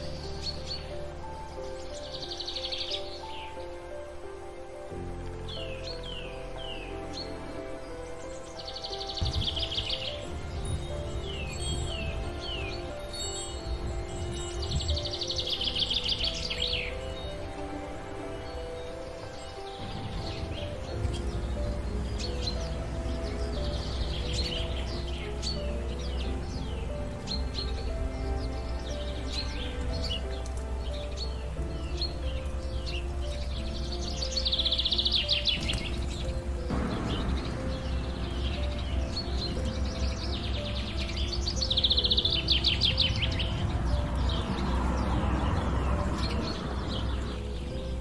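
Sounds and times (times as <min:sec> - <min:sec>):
fast dense bird trills: 0:00.0 - 0:48.0
songbirds chirping: 0:00.0 - 0:48.0.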